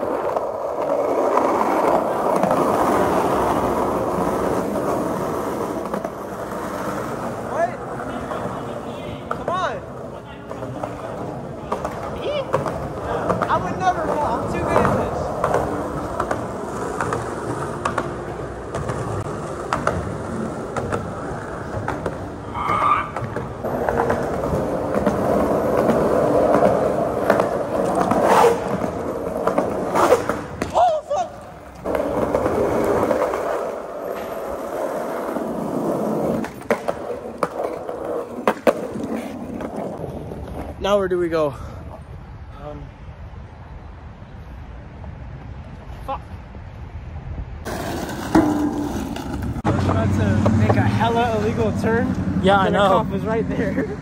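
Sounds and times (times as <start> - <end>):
skateboard wheels rolling on concrete: 0.0 - 54.0.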